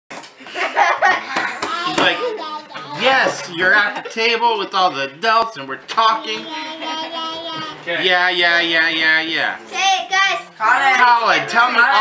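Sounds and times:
people laughing: 0:00.4 - 0:02.4, 0:03.2 - 0:04.4
baby babbling: 0:06.2 - 0:07.9.

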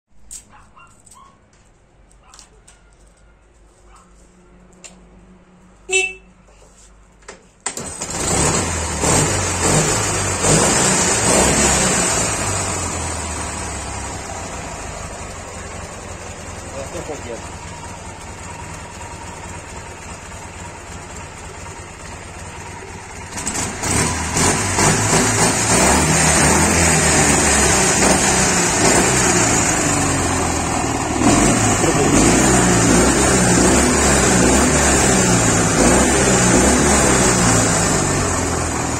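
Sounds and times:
motorcycle engine starting: 0:07.6 - 0:38.9
motorcycle engine running: 0:08.0 - 0:38.9.

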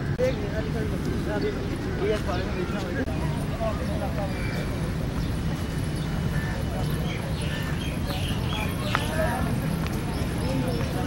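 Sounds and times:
people chattering outdoors: 0:00.0 - 0:11.0.

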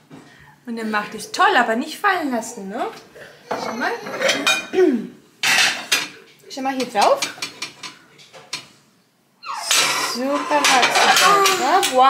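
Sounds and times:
ceramic plates clinking and scraping: 0:03.5 - 0:04.7, 0:05.4 - 0:06.2, 0:09.6 - 0:12.0.

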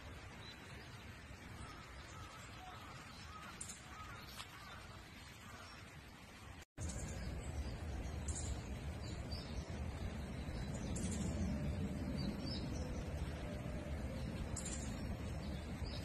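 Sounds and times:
wild birds chirping: 0:00.3 - 0:16.0
steady low rumble: 0:06.8 - 0:16.0.

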